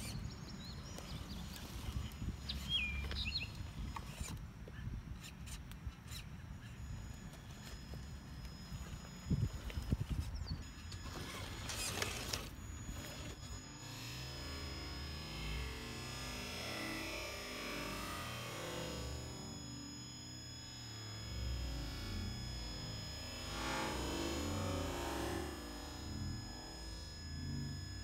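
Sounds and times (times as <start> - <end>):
outdoor microphone noise: 0.0 - 28.0.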